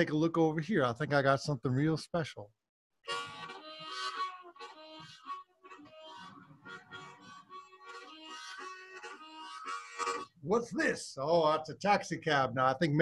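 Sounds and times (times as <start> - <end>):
harmonica playing: 3.0 - 10.4.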